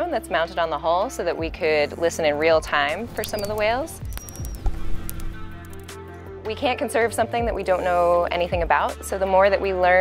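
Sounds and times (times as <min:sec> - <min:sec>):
soft background music: 0:00.0 - 0:10.0
sharp clicks: 0:02.9 - 0:06.0
high thin whistle: 0:03.2 - 0:05.2.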